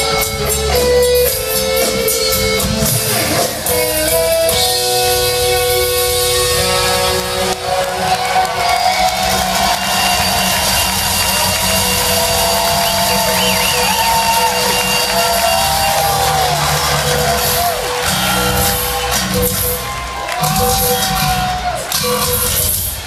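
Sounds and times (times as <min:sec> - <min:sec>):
rock band playing live: 0:00.0 - 0:23.0.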